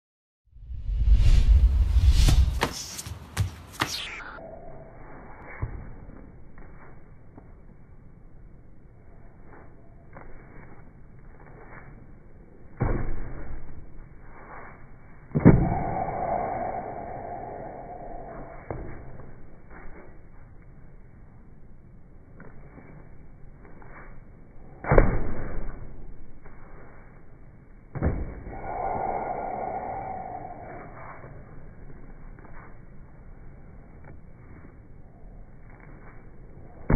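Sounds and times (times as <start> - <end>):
low rumble: 0.5 - 2.7, 15.4 - 18.9, 28.3 - 32.2
loud whoosh: 0.5 - 3.1, 15.4 - 18.8, 28.4 - 31.4.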